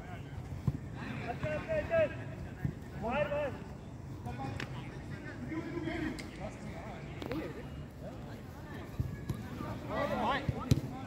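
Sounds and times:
footballers shouting: 0:01.0 - 0:03.7, 0:08.8 - 0:11.0.

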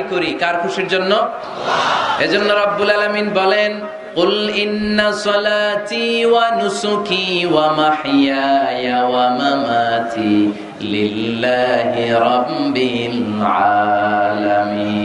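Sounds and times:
man chanting into a microphone: 0:02.2 - 0:15.0.

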